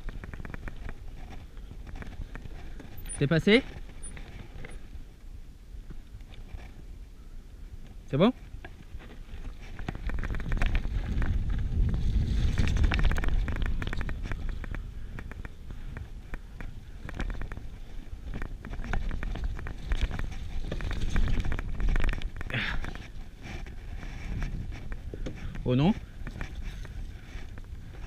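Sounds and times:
bike rattles and knocks: 0.0 - 7.0, 7.8 - 28.0
bike tyre rumble on dirt: 0.0 - 28.0
wind buffeting microphone: 8.8 - 28.0.

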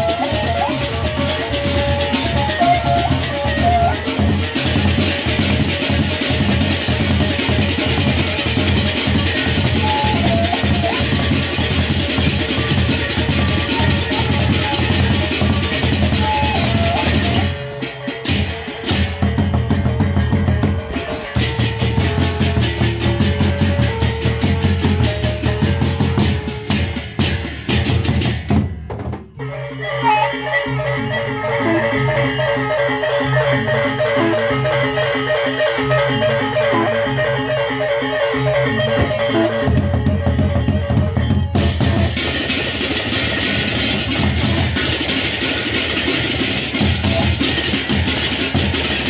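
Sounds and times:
barrel drums: 0.0 - 29.4, 38.8 - 49.0.

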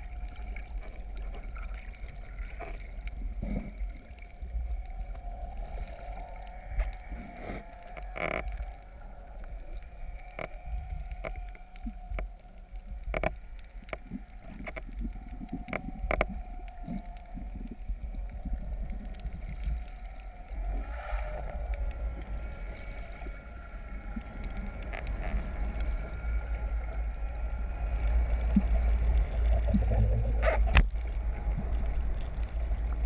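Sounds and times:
underwater rumble of rushing water: 0.0 - 33.0.

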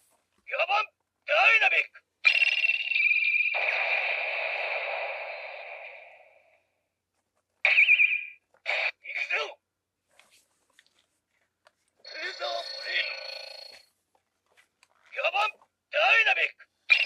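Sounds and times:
high electronic ringing tone: 2.3 - 3.8, 12.1 - 13.9.

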